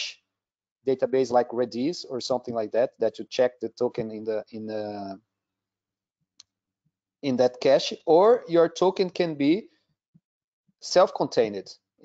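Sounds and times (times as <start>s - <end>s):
man's voice: 0.9s - 5.2s, 7.2s - 9.6s.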